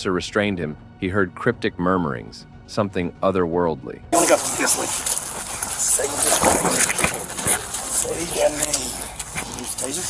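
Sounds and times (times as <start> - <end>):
rustling against microphone: 4.2 - 10.0.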